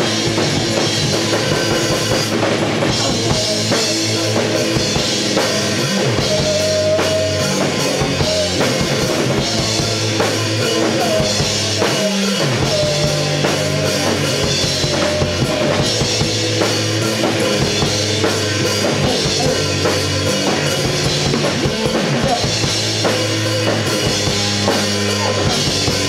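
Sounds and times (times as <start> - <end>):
rock band playing: 0.0 - 26.0.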